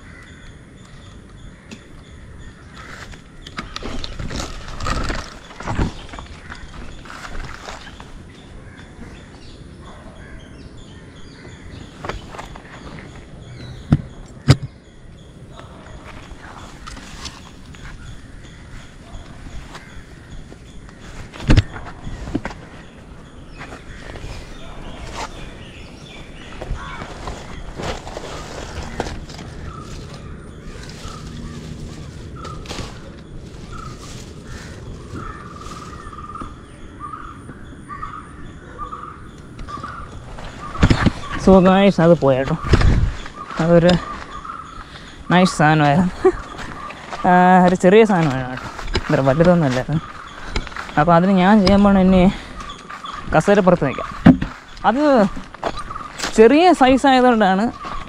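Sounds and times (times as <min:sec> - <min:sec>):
birds calling: 0:00.0 - 0:58.0.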